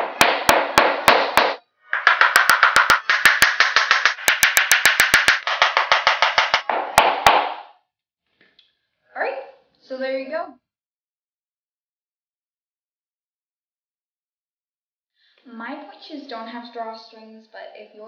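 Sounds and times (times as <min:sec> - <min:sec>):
hammer striking shoe toe box: 0:00.0 - 0:07.7.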